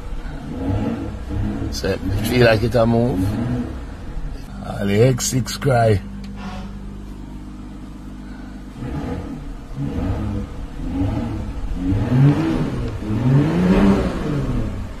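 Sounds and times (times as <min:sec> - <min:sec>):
car engine idling and revving: 0:00.0 - 0:15.0.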